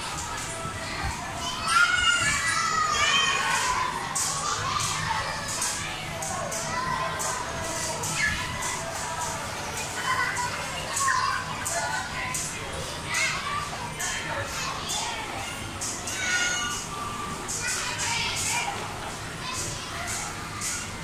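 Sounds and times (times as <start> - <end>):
children's voices and chatter: 0.0 - 21.0.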